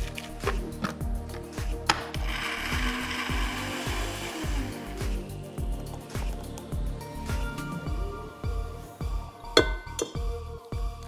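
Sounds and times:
blender whirring: 0:01.9 - 0:05.3.

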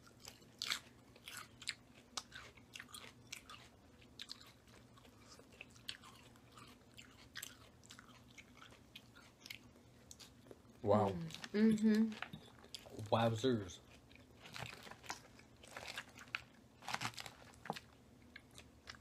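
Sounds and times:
faint low hum: 0:00.0 - 0:19.0
people chewing crunchy salad: 0:00.0 - 0:19.0.

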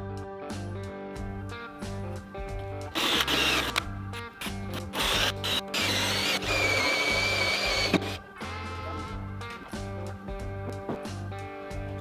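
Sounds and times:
guitar music: 0:00.0 - 0:12.0
cordless drill into wood: 0:03.0 - 0:03.8, 0:04.8 - 0:08.2.

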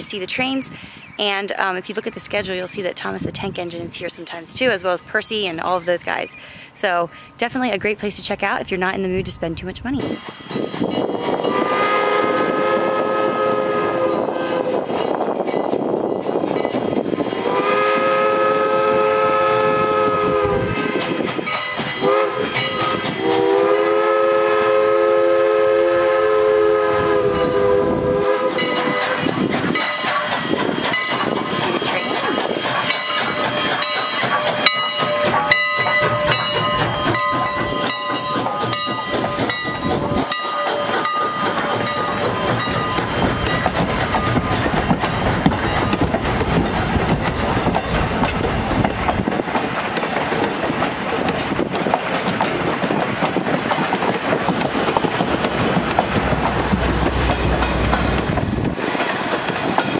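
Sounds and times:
steam locomotive whistle: 0:10.0 - 0:15.0, 0:17.3 - 0:21.2, 0:21.8 - 0:44.5
train wheels clacking over rail joints: 0:20.3 - 0:24.4, 0:27.3 - 0:59.9.

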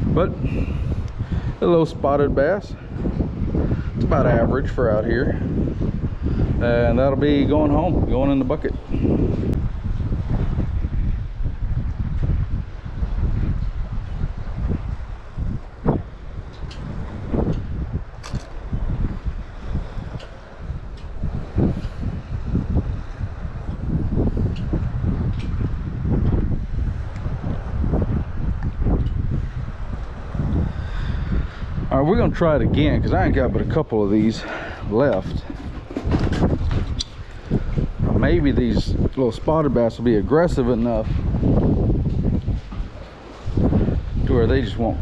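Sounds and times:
wind blowing on microphone: 0:00.0 - 0:45.0.

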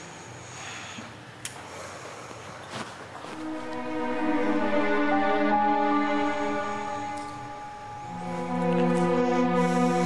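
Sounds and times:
person shifting rustle: 0:02.6 - 0:03.8.

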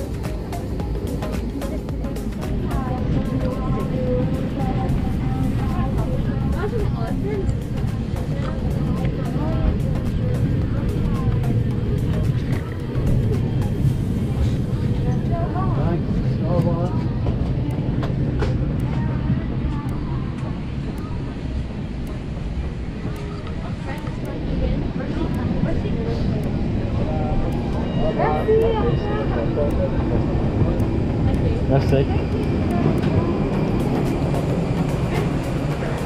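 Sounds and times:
aircraft air system rumble: 0:00.0 - 0:36.0
murmur of voices: 0:00.0 - 0:36.0.

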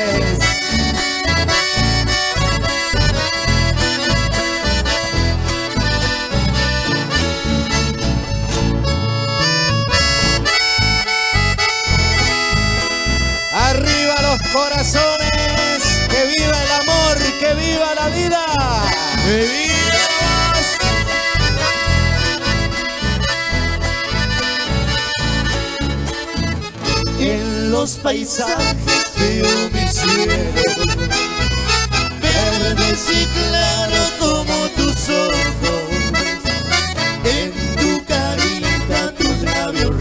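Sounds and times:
accordion melody: 0:00.0 - 0:40.0
rhythmic bass beat: 0:00.0 - 0:40.0.

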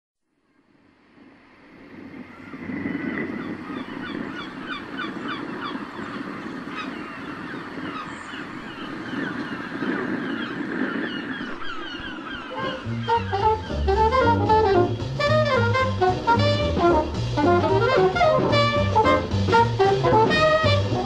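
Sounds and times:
gulls crying: 0:02.2 - 0:21.0
low rushing background: 0:11.6 - 0:21.0.

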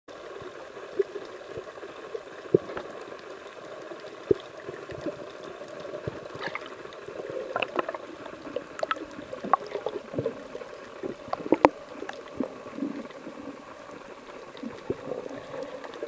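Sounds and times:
underwater hiss: 0:00.2 - 0:16.0
sharp underwater clicks: 0:07.5 - 0:10.3.

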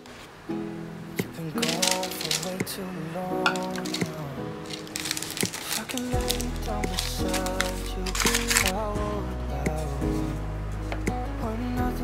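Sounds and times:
crumbs pattering into pan: 0:01.6 - 0:02.6, 0:03.5 - 0:08.7.

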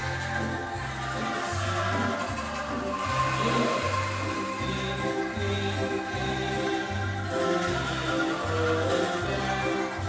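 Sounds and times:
angklung playing a tune: 0:00.0 - 0:10.0
bass line: 0:00.0 - 0:10.0
held note: 0:00.0 - 0:10.0.

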